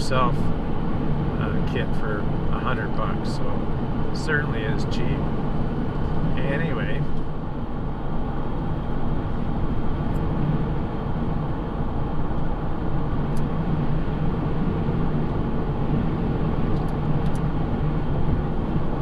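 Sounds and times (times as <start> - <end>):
diesel engine droning: 0.0 - 19.0.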